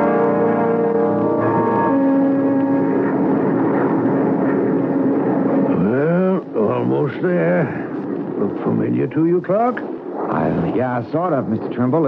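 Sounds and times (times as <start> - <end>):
jet engine drone: 0.0 - 12.0.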